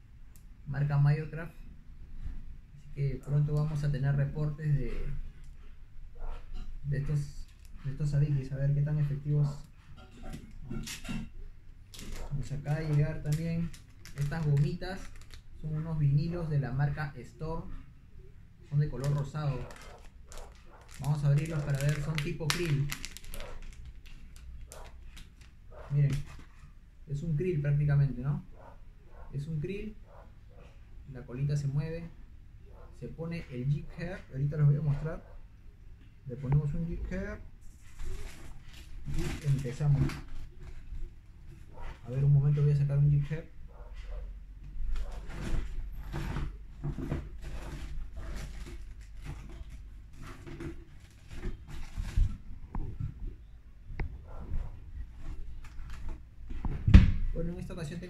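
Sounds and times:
rustling and handling noises: 0.2s - 58.0s
plastic packet crackling: 11.9s - 15.6s, 18.9s - 26.2s.

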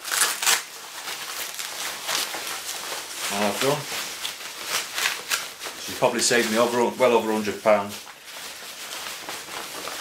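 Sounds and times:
jacket fabric rustling: 0.0s - 10.0s.

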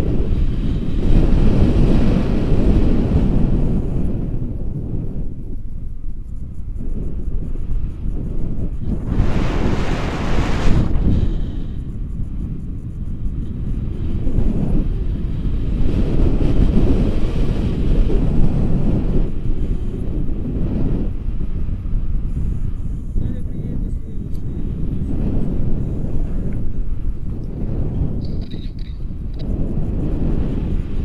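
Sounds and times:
wind rushing over microphone: 0.0s - 31.0s.

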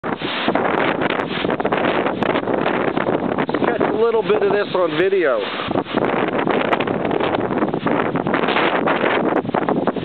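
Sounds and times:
storm wind blowing through trees: 0.0s - 10.0s
wind buffeting microphone: 0.0s - 10.0s.

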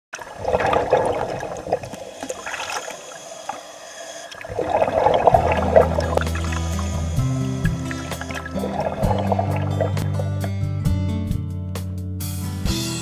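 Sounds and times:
water sloshing and bubbling: 0.1s - 10.4s
low steady music tones: 4.6s - 11.5s.

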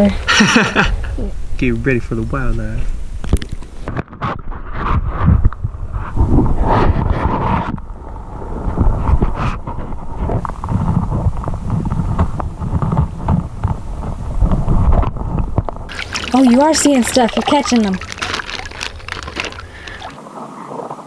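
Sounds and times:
muffled underwater sloshing: 8.0s - 20.2s
water splashing: 15.8s - 20.9s.

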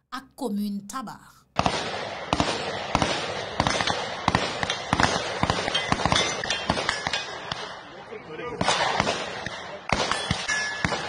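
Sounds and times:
gunfire cracks: 1.6s - 7.9s, 8.5s - 11.0s.

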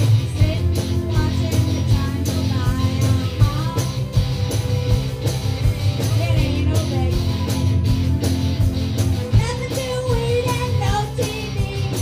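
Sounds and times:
woman singing: 0.0s - 4.2s, 5.8s - 8.0s, 9.2s - 12.0s
drum kit beat: 0.0s - 12.0s
electric guitars: 0.0s - 12.0s.

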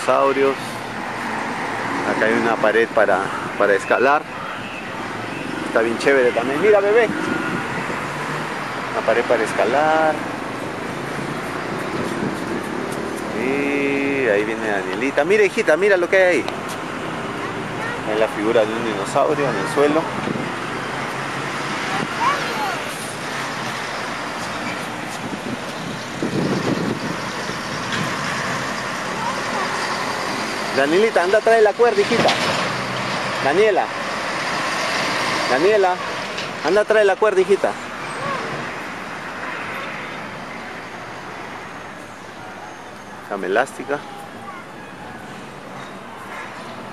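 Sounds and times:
road traffic: 0.0s - 46.9s.

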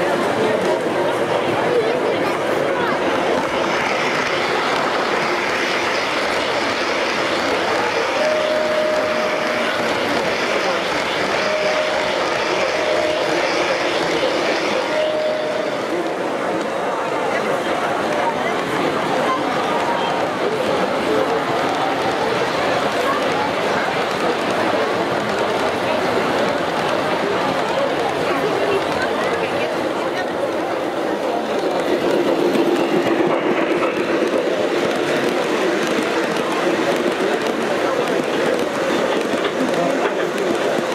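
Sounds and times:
crowd chatter: 0.0s - 40.9s
model train wheels rumbling: 0.0s - 40.9s
held tone: 3.4s - 16.1s.

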